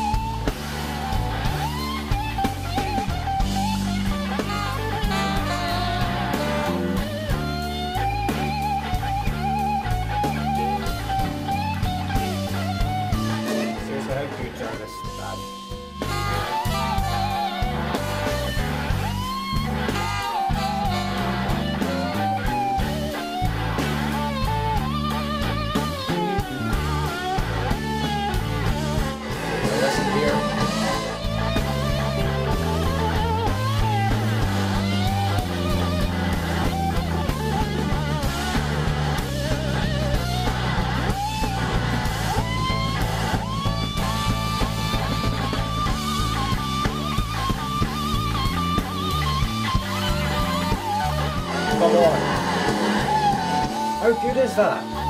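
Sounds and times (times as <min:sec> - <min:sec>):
drums and band: 0:00.0 - 0:55.0
electric slide guitar solo: 0:00.0 - 0:55.0.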